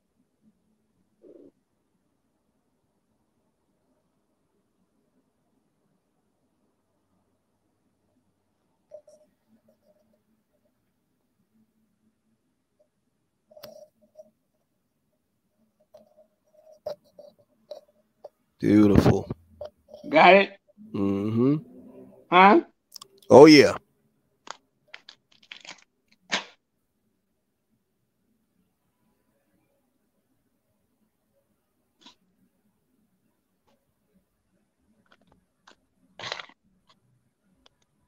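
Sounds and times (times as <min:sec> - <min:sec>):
paper crinkling and rustling: 0:24.5 - 0:26.5, 0:35.1 - 0:36.6.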